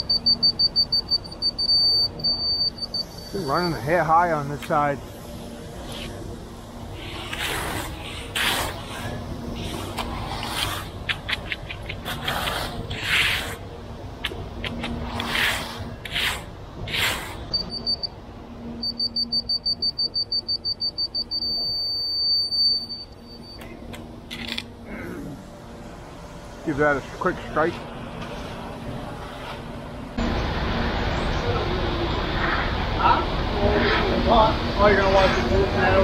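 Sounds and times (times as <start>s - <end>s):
quick high beeping: 0.0s - 3.8s, 18.8s - 23.6s
steady electronic tone: 0.0s - 7.2s, 17.5s - 23.9s.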